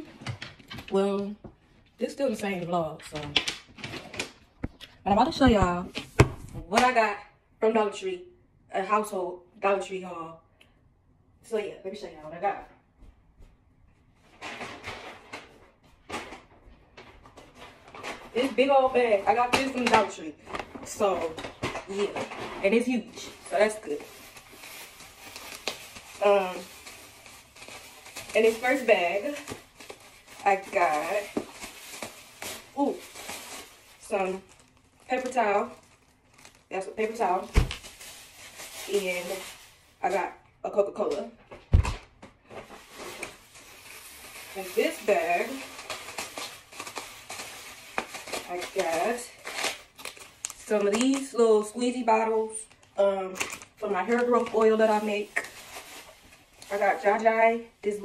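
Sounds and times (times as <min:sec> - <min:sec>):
shopping bags rustling: 0:14.3 - 0:40.3, 0:42.4 - 0:58.0.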